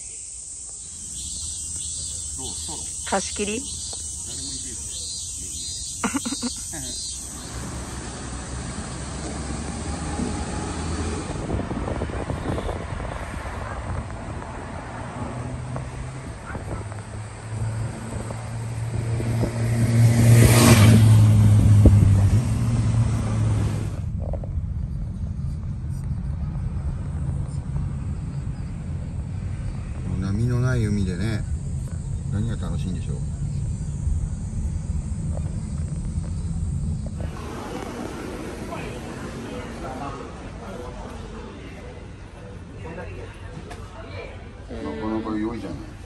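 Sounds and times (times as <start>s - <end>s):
road rumble inside moving car: 6.1s - 46.0s
train rumbling past: 7.2s - 16.2s, 17.2s - 44.5s.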